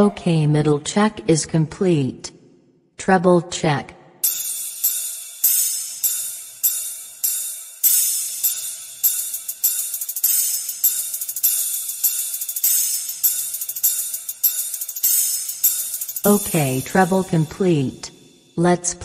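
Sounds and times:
cymbal and hi-hat strikes: 4.2s - 18.6s.

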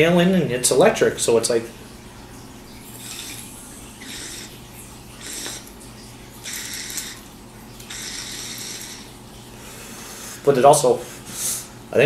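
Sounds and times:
water bubbling in glass pipe: 2.5s - 9.6s.

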